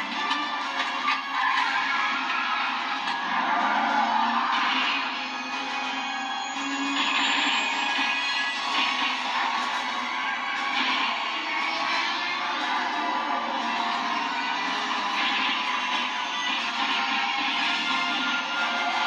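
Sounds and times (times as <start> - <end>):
dramatic film music from television: 0.0 - 19.0.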